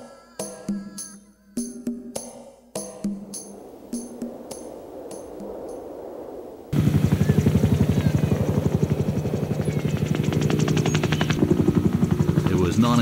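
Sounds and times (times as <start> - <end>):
faint percussion music: 0.0 - 6.1
helicopter rotor beating: 3.0 - 13.0.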